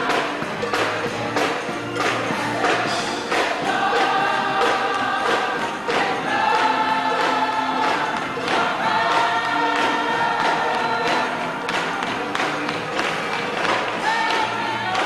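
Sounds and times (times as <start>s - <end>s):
gospel choir singing: 0.0s - 15.0s
hand clapping on a beat: 0.0s - 15.0s.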